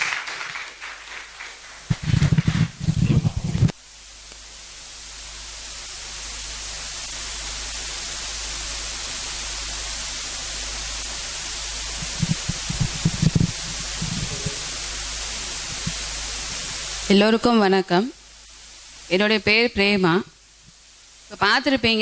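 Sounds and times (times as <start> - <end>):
steady electronic hiss: 0.0 - 22.0
microphone handling bumps: 12.0 - 14.7.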